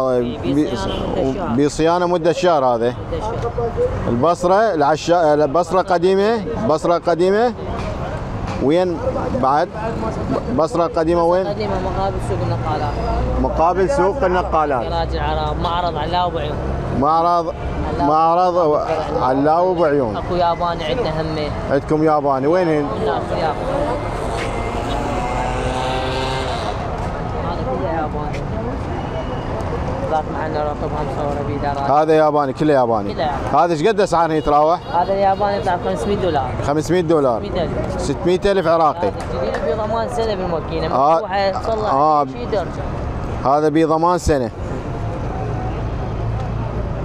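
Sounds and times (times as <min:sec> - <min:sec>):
road traffic rumble: 0:00.0 - 0:47.0.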